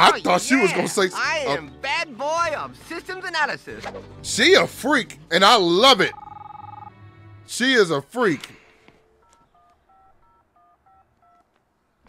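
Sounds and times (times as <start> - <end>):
telephone keypad dialing beeps: 6.1 - 6.9, 9.2 - 11.4.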